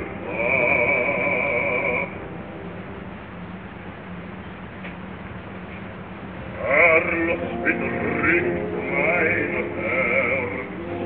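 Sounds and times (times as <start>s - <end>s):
operatic voice singing: 0.0s - 2.3s, 6.5s - 11.0s
recording hiss: 0.0s - 11.0s
steady low hum: 0.0s - 11.0s.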